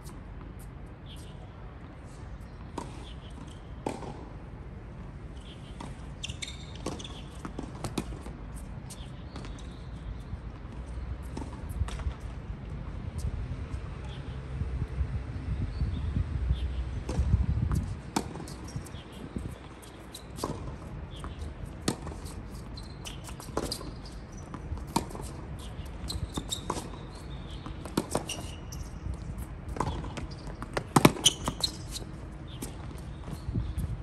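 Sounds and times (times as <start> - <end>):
tennis ball bouncing: 2.5 - 4.3, 5.4 - 9.7, 17.0 - 33.9
racket hitting tennis ball: 17.1 - 22.4, 29.4 - 33.0.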